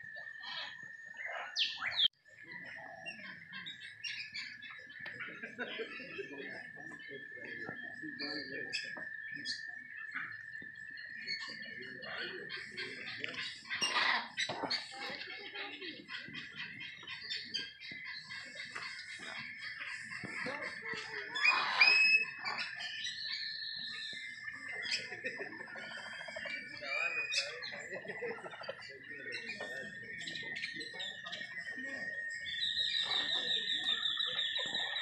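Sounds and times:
birds chirping and calling: 0.0 - 35.0.

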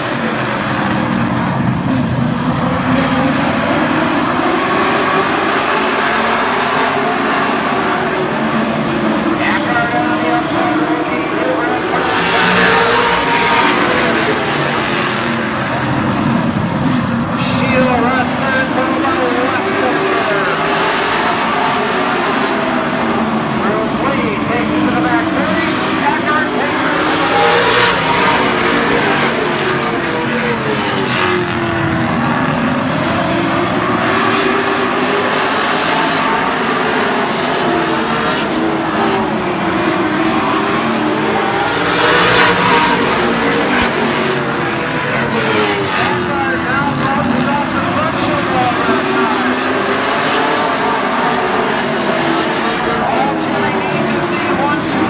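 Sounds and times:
race car engines passing: 0.0 - 55.0.

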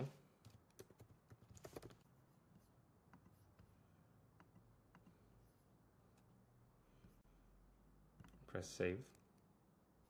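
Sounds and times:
typing on computer keyboard: 0.4 - 2.0.

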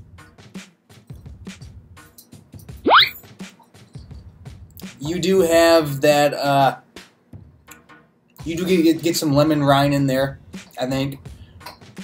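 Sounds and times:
background music with steady beat: 0.0 - 12.0
upward-sliding whistle: 2.9 - 3.2.

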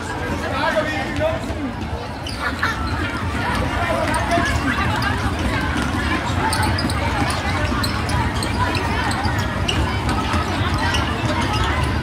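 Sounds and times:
children running footsteps: 0.0 - 12.0
children's voices: 2.3 - 12.0.

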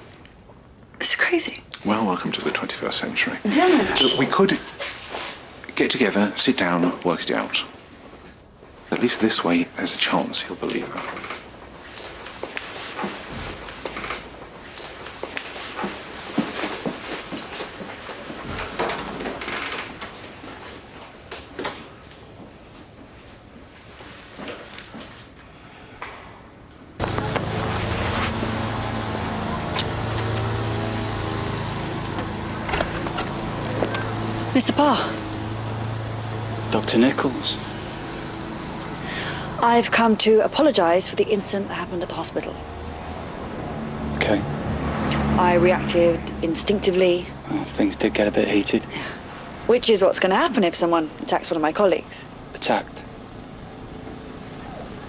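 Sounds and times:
distant road traffic: 0.0 - 23.1, 25.8 - 55.0
vehicle engine humming: 27.0 - 55.0.

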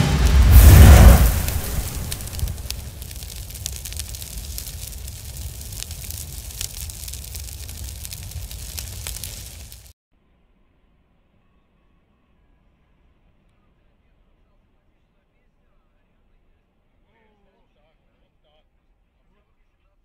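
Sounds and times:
loud explosion boom: 0.0 - 9.9
low rumble with crackles and pops: 0.0 - 9.9.

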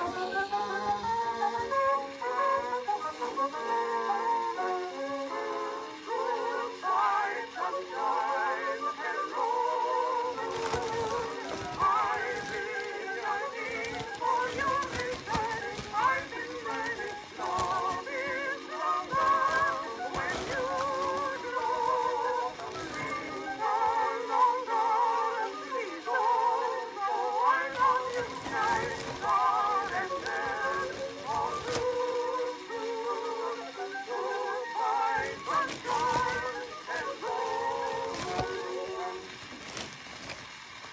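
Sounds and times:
person singing with vibrato: 0.0 - 39.4
instrumental accompaniment: 0.0 - 40.8.

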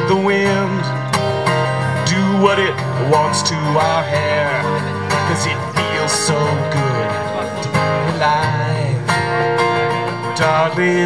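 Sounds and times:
acoustic guitars strumming: 0.0 - 11.0.

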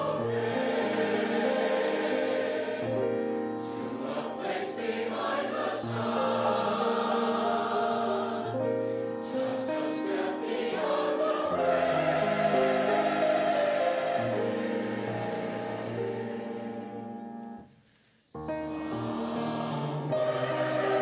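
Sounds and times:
choir singing held chords: 0.0 - 17.4, 18.4 - 21.0.

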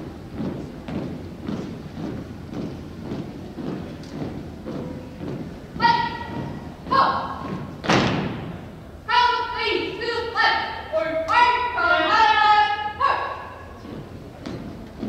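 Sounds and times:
marching footsteps on wooden floor: 0.0 - 8.7, 13.6 - 15.0
person shouting commands: 5.8 - 7.4, 9.1 - 13.5.

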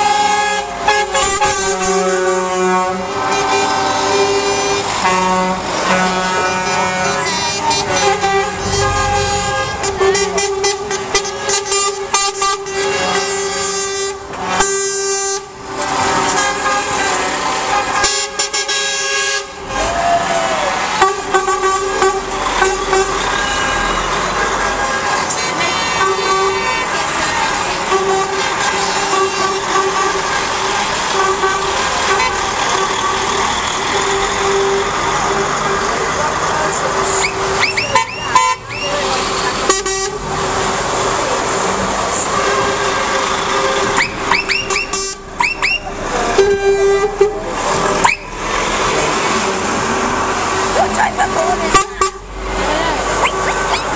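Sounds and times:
lorry air horns: 0.0 - 36.0, 37.0 - 40.7, 46.0 - 48.1, 51.6 - 53.5
truck engines running: 0.0 - 53.9.

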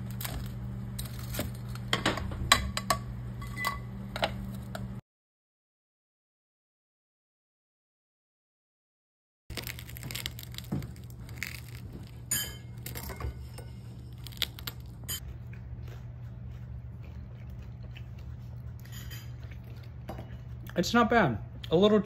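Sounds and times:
steady low hum: 0.0 - 5.0, 9.5 - 22.0
fork scraping ceramic plate: 18.8 - 19.4.

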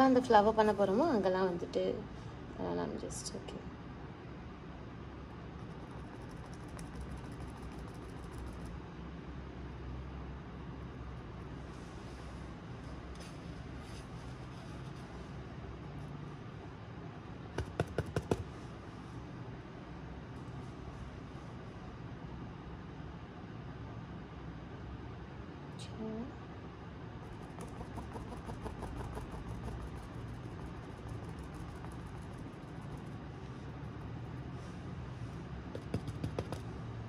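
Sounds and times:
low room hum: 0.0 - 37.0
sharp taps of palette and brush: 17.5 - 18.5, 35.7 - 36.7.

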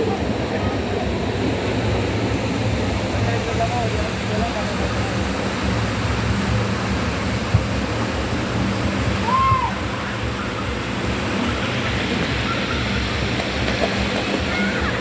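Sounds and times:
flowing water rushing: 0.0 - 15.0
steady low hum: 0.0 - 15.0.

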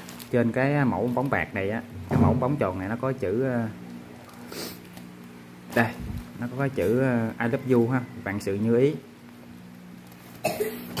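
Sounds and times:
low room hum: 0.0 - 11.0
man coughing: 10.4 - 11.0.

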